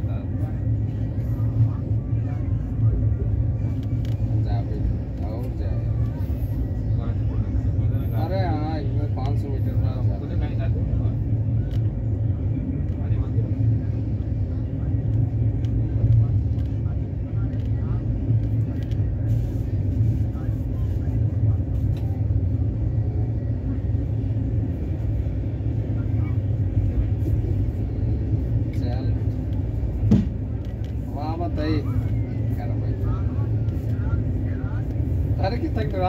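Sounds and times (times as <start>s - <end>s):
faint voices: 0.0s - 36.0s
moving train rumble: 0.0s - 36.0s.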